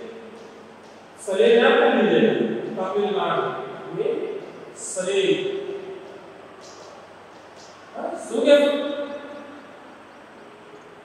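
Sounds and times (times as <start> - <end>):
faint room tone hiss: 0.0 - 11.0.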